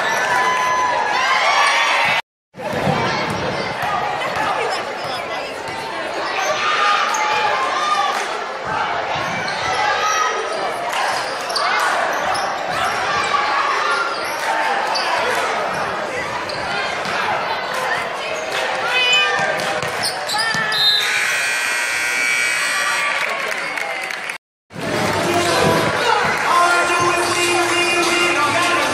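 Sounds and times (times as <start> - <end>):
crowd talking and calling out: 0.0 - 28.9
scoreboard horn: 20.9 - 23.4.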